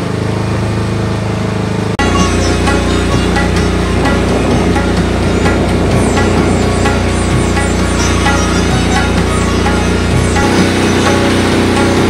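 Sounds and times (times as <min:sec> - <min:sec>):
boat engine drone: 0:00.0 - 0:12.0
background music: 0:02.0 - 0:12.0.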